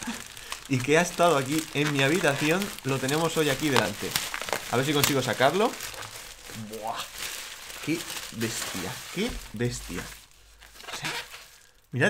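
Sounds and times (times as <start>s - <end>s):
bubble wrap crinkling: 0.0s - 12.0s.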